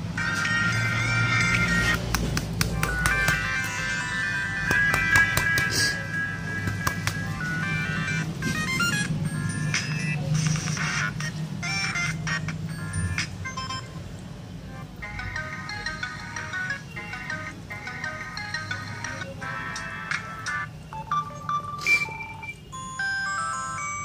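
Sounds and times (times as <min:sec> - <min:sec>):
phone ringtone melodies: 0:00.0 - 0:02.1, 0:02.7 - 0:24.0.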